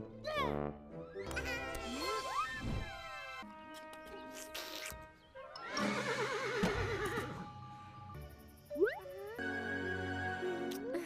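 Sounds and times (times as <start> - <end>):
background music: 0.0 - 11.0
horse whinnying: 5.6 - 7.4.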